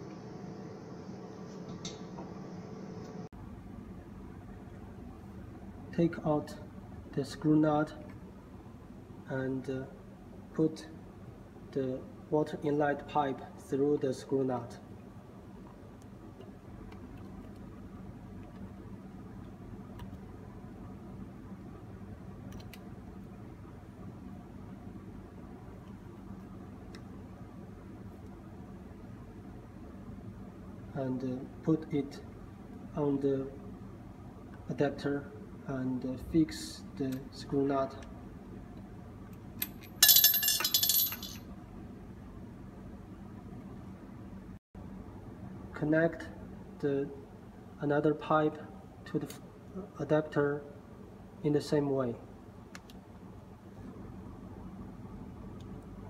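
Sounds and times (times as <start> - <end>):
low room hum: 0.0 - 56.0
metal clinking and rattling: 39.6 - 41.4.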